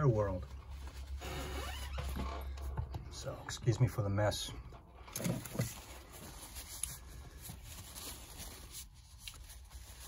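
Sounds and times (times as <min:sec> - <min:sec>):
paper tissue rustling on knife blade: 0:05.5 - 0:10.0.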